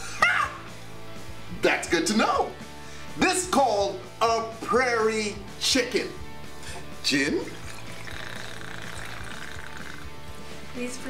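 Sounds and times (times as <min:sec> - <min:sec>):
liquid pouring into glass: 0:07.2 - 0:10.2.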